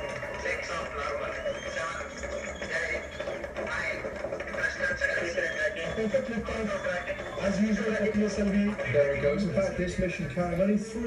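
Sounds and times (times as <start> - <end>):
television news voices: 0.0 - 11.0.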